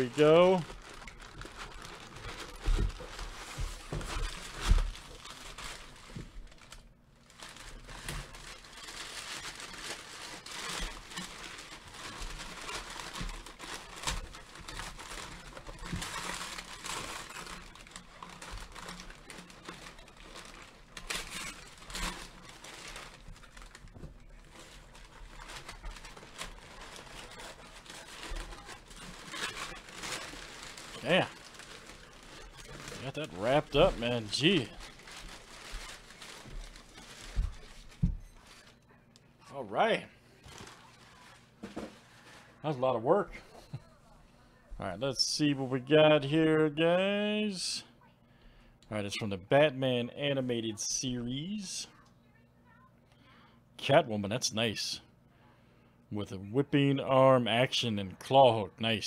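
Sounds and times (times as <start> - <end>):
packing paper crinkling: 0.0 - 38.9, 40.3 - 42.6.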